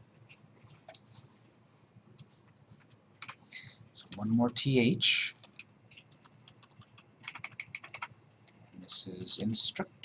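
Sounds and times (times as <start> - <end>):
computer keyboard typing: 2.8 - 3.4, 5.4 - 9.1.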